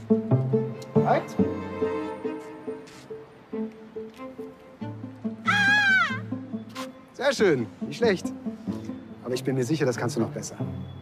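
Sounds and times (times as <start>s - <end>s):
background music with steady beat: 0.0s - 11.0s
woman yelling: 5.5s - 6.2s.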